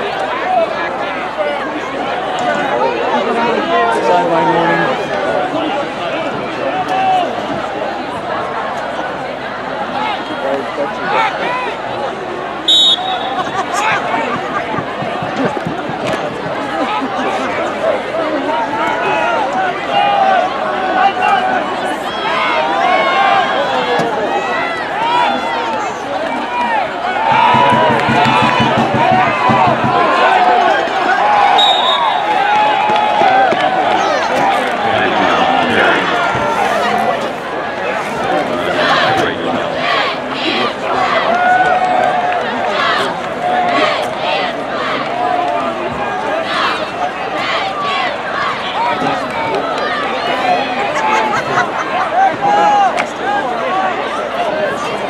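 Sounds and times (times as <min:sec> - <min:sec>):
crowd voices talking and calling: 0:00.0 - 0:55.0.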